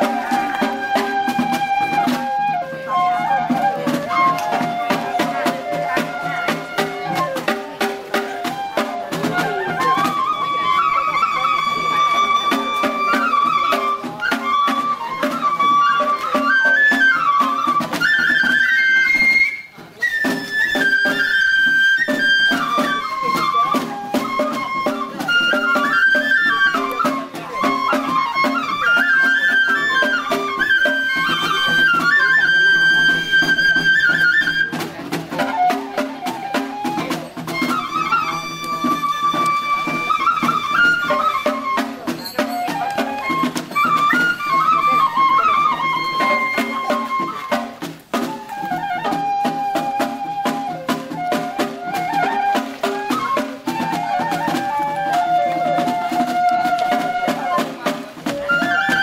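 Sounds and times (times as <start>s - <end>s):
bamboo flute melody: 0.0s - 59.0s.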